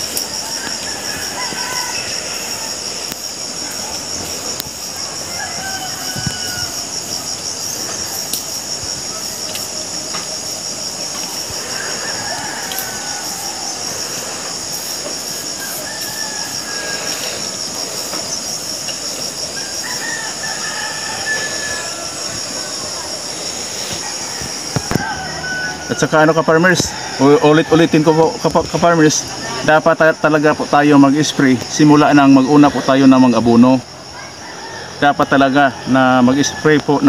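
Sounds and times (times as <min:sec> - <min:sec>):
insect chorus: 0:00.0 - 0:37.0.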